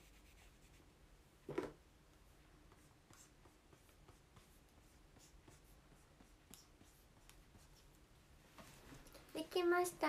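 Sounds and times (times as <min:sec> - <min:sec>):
pen scratching on paper: 0:02.7 - 0:07.9.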